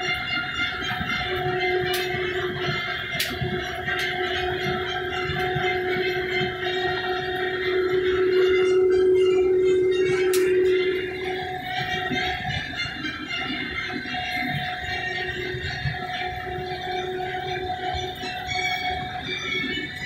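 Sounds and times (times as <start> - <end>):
steady mechanical whine: 0.0 - 20.0.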